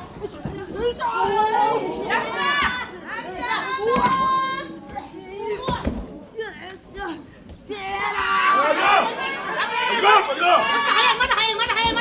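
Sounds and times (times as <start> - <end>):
women shouting: 7.0 - 12.0.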